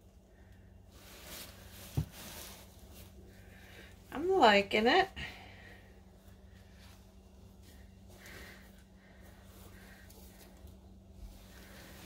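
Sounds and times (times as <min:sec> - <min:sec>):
soft rustle: 0:00.0 - 0:04.1, 0:05.2 - 0:12.0
steady low hum: 0:00.0 - 0:12.0.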